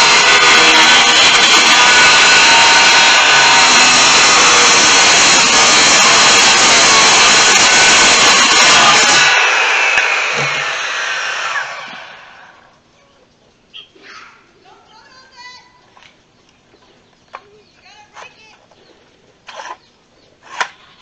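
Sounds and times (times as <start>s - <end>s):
circular saw cutting wood: 0.0s - 12.7s.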